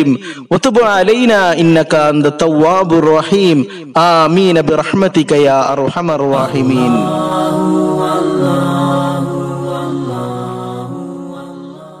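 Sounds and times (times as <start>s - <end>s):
person chanting long notes: 6.3s - 12.0s.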